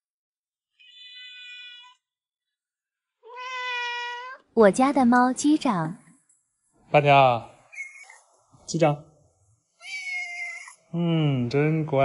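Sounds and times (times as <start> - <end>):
cat meowing: 0.8 - 2.0, 3.2 - 4.5, 9.8 - 10.8.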